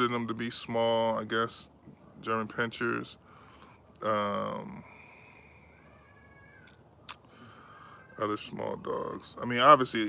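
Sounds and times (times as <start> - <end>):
high-pitched animal call: 5.7 - 6.8.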